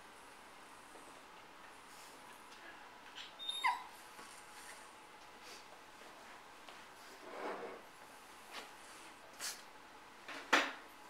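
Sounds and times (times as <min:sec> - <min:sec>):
small dog whimpering: 0:03.2 - 0:03.9.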